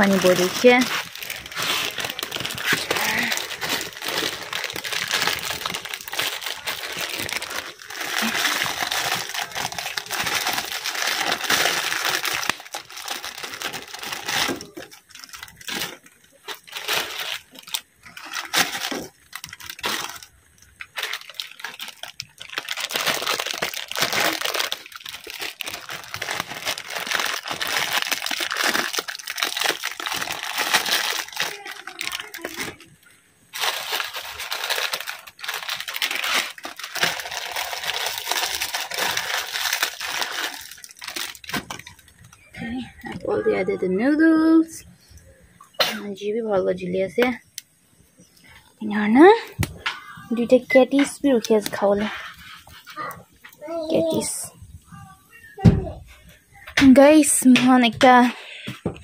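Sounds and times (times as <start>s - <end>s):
plastic packet crinkling: 0.0s - 44.2s, 49.2s - 54.4s.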